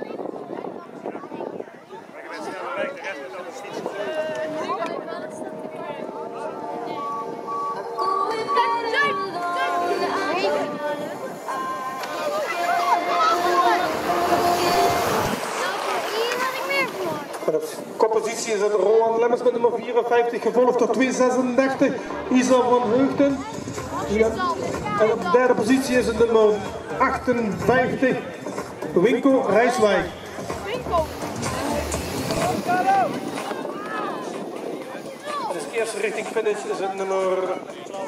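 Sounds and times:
wind rumbling on microphone: 0.0 - 18.1, 30.2 - 36.7
voices calling out: 1.0 - 18.0
steady outdoor hiss: 5.7 - 38.0
bicycle tyres rushing: 11.0 - 18.5, 29.7 - 36.8
spectators shouting: 11.3 - 17.2, 30.2 - 35.6.

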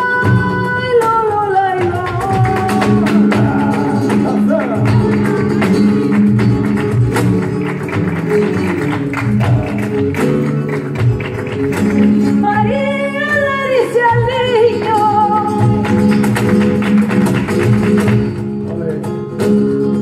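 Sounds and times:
person singing: 0.0 - 6.1
acoustic flamenco guitars: 0.0 - 20.0.

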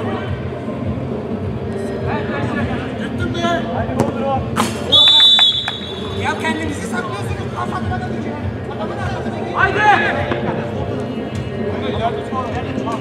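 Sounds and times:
referee whistle blast: 4.9 - 6.4.

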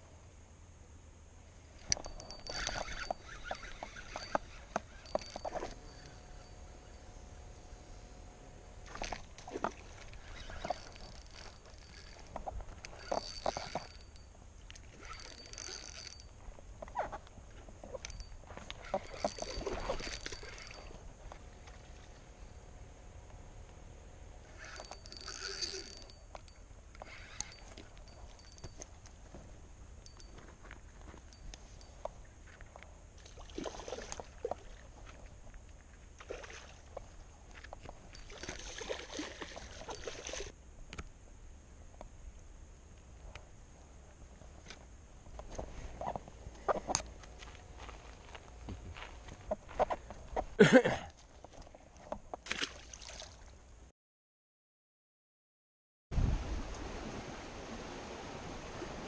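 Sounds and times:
fishing reel clicking and whining: 1.8 - 7.0, 10.0 - 14.3, 14.9 - 16.4, 17.9 - 22.5, 24.4 - 28.9, 38.1 - 38.8.

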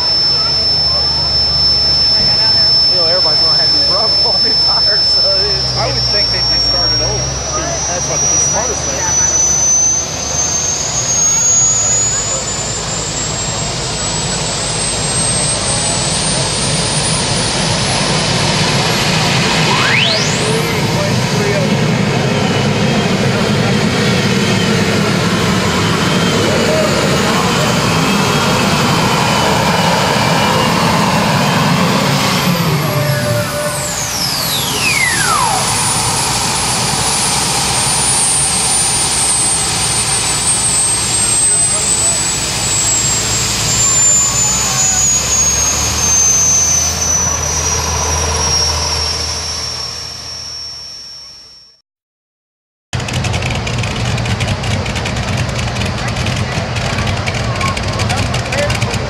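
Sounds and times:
tractor engine rumble: 0.0 - 51.0, 53.0 - 59.0
high engine whine: 0.0 - 51.8, 53.0 - 59.0.

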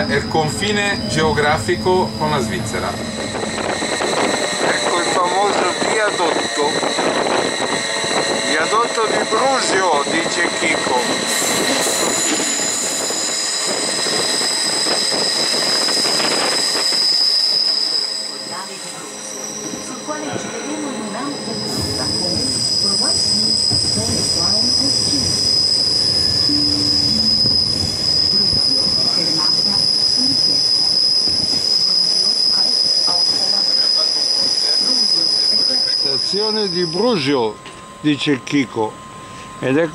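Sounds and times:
rumble of train carriages: 0.0 - 39.9
train wheels squealing on rails: 0.0 - 39.9.

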